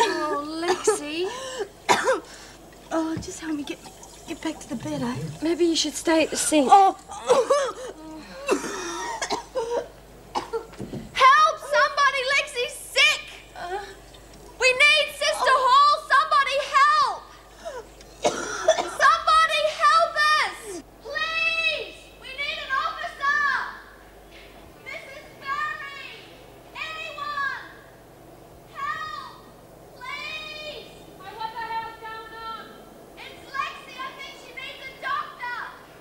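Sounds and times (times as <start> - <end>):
woman coughing harshly: 0.0 - 2.3, 6.2 - 10.7, 18.2 - 19.1.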